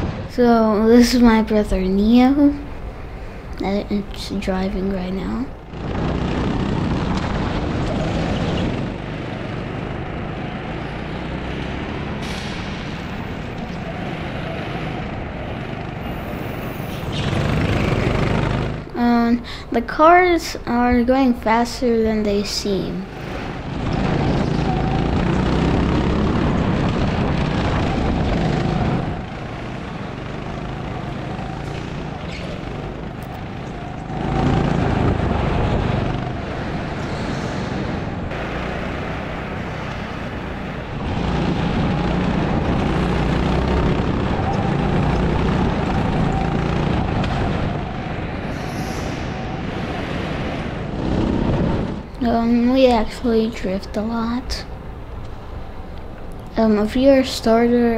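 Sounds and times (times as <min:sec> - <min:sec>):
go-kart motor running: 0:00.0 - 0:19.3, 0:23.0 - 0:48.6, 0:49.2 - 0:53.2
rushing wind: 0:00.0 - 0:57.9.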